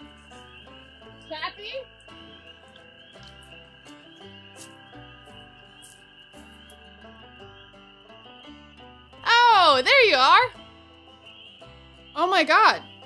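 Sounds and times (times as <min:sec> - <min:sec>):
night frogs or insects chorus: 0:00.0 - 0:13.0
soft background score: 0:00.0 - 0:13.0.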